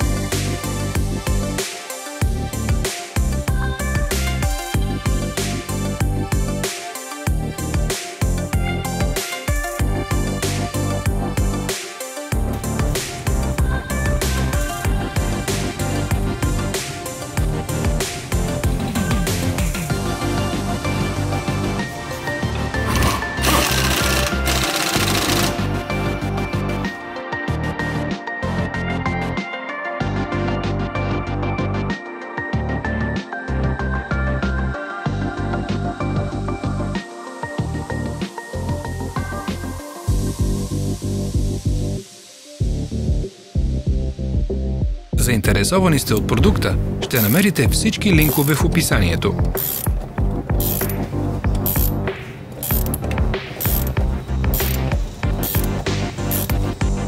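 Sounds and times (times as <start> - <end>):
background music with steady beat: 0.0 - 57.0
air impact wrench hammering: 22.9 - 25.6, 49.5 - 51.0, 51.6 - 52.0, 52.6 - 56.6.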